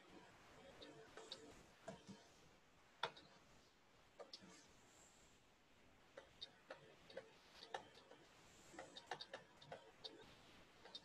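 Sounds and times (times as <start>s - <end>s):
stylus tapping on tablet: 0.8s - 2.2s, 3.0s - 3.4s, 6.1s - 10.2s.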